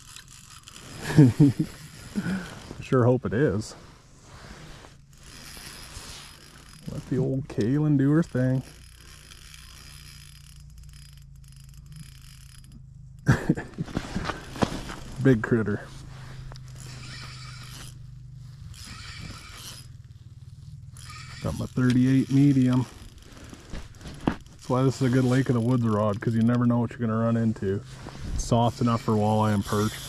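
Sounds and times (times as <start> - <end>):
fishing reel drag buzzing: 0.0 - 2.9, 3.9 - 13.5, 14.1 - 26.8, 28.0 - 30.0.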